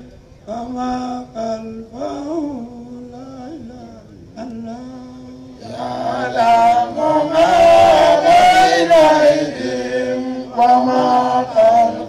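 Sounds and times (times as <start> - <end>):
group chanting devotional chant: 0.0 - 12.0.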